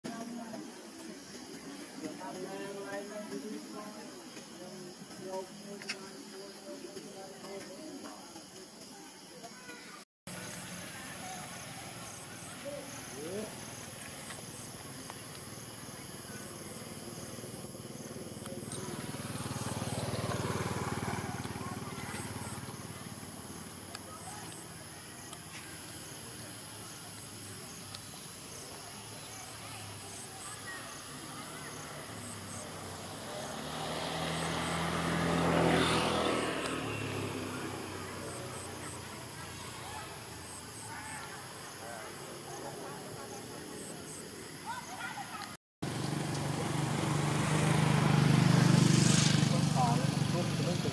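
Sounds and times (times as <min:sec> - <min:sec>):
insect chirps: 0:00.1 - 0:50.9
vehicle engine passing by: 0:16.2 - 0:26.6, 0:29.9 - 0:40.8, 0:45.8 - 0:50.9.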